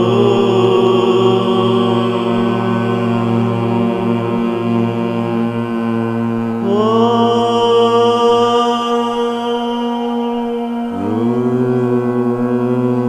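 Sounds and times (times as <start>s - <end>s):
devotional chanting with held notes: 0.0s - 13.0s
steady drone: 0.0s - 13.0s.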